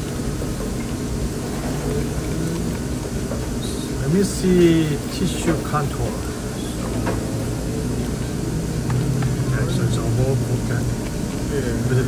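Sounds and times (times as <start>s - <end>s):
low hum: 6.2s - 12.0s.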